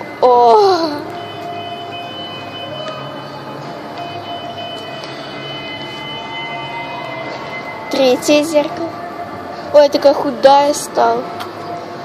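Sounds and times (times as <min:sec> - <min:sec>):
high-pitched whine: 0:00.0 - 0:12.0
steady hall hum: 0:00.0 - 0:12.0.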